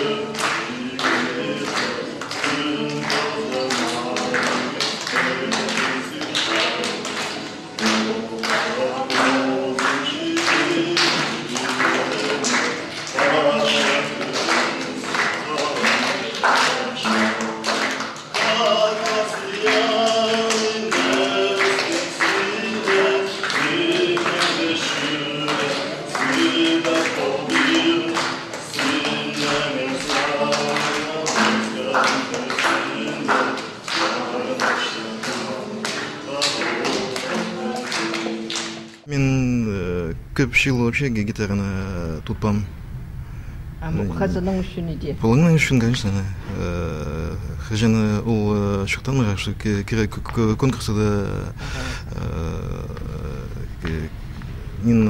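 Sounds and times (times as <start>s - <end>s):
man and woman singing: 0.0s - 40.1s
acoustic guitar strumming: 0.0s - 48.6s.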